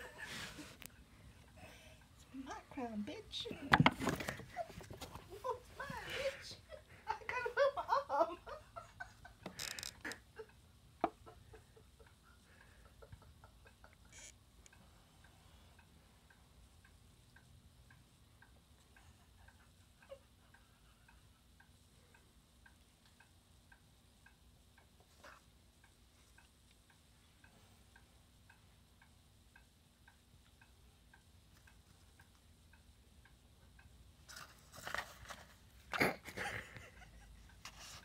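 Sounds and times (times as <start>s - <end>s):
faint regular ticking: 5.5s - 35.4s.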